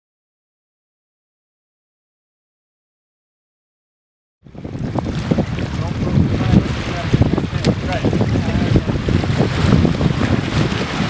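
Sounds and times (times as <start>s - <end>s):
wind buffeting microphone: 4.4s - 11.0s
sea washing against rocks: 4.5s - 11.0s.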